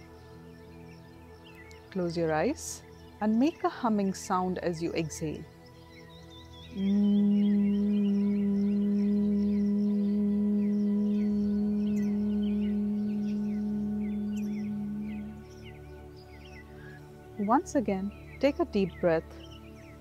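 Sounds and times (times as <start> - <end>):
woman humming on one low pitch: 6.7 - 15.5.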